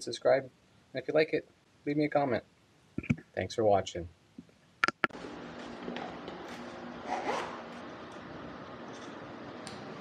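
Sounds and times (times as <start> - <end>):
zipper being pulled: 6.5 - 7.8.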